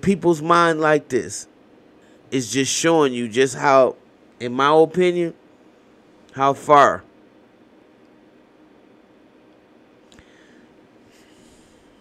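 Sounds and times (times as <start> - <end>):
hissy breath in: 10.1 - 12.0
person breathing quietly: 10.1 - 12.0.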